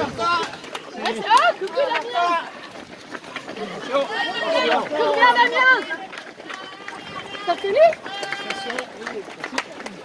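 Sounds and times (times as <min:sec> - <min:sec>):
faint voices outdoors: 0:00.0 - 0:10.0.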